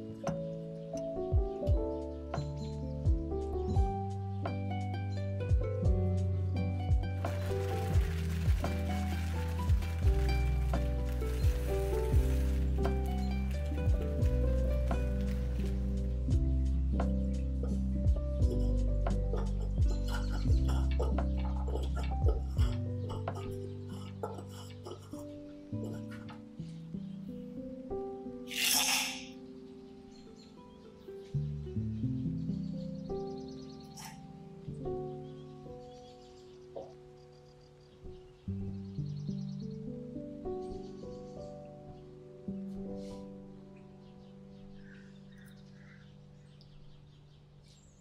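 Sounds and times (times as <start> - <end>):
soft background music: 0.0 - 48.0
music with kick-drum beat: 1.3 - 2.0, 3.1 - 4.2, 5.5 - 6.2, 16.3 - 19.2.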